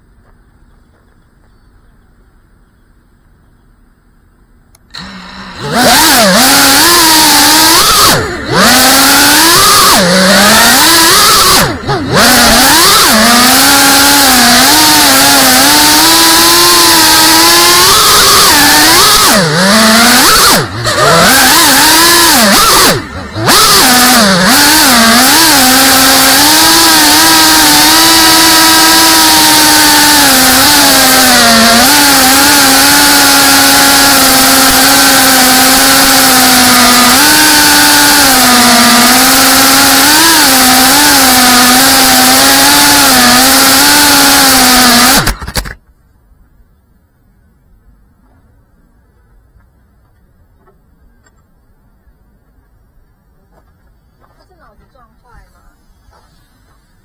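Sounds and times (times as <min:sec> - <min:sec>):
drone motors and propellers whining: 0:04.7 - 0:45.8.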